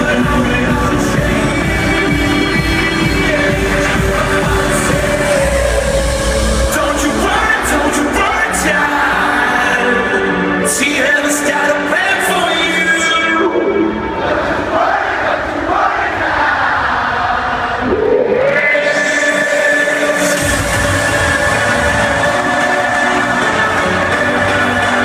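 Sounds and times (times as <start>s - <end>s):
deep bass: 0.0s - 9.6s
electronic dance music: 0.0s - 15.4s, 17.7s - 25.0s
crowd singing and chanting: 0.0s - 25.0s.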